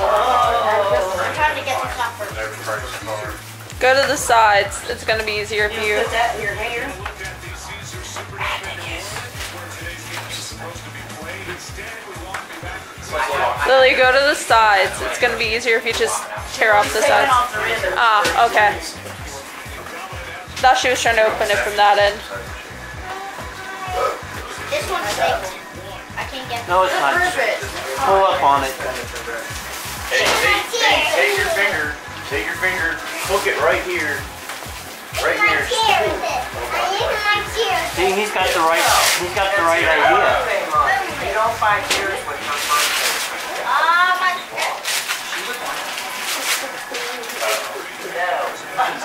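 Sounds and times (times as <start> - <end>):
music with bass beat: 0.0 - 15.6, 31.4 - 36.8
faint voices talking: 0.0 - 49.0
child calling out: 23.0 - 24.2
wrapping paper tearing: 28.6 - 36.1, 37.1 - 41.1, 41.8 - 48.9.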